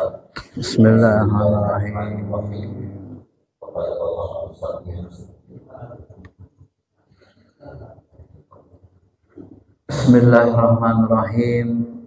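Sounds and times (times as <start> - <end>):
man speaking through microphone: 0.0 - 6.4, 9.9 - 12.0.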